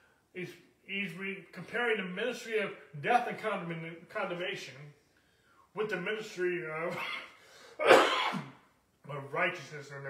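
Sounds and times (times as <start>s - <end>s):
man coughing: 6.9s - 8.6s.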